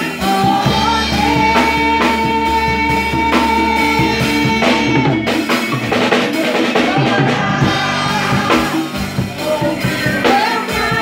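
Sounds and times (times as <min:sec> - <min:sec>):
acoustic and electric guitars: 0:00.0 - 0:11.0
drum kit beat: 0:00.0 - 0:11.0.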